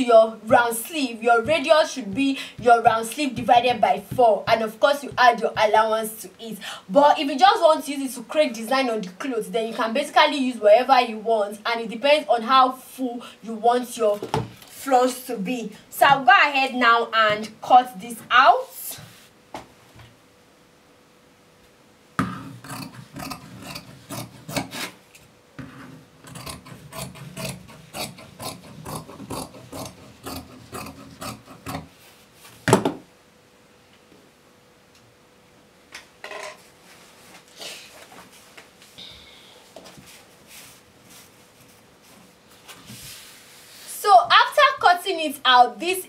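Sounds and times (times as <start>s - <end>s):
scissors snipping fabric: 26.3s - 31.9s.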